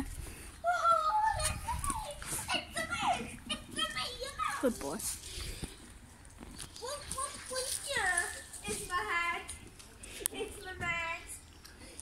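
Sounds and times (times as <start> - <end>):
child making wordless sounds: 0.6 - 5.0.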